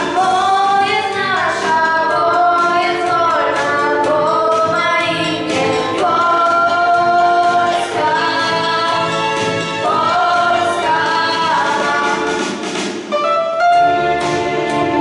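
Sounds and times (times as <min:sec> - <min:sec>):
two girls singing into microphones: 0:00.0 - 0:12.5.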